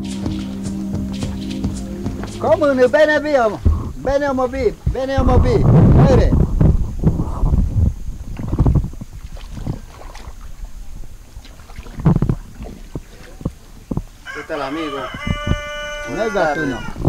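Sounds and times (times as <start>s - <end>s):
rooster crowing: 14.2s - 17.0s.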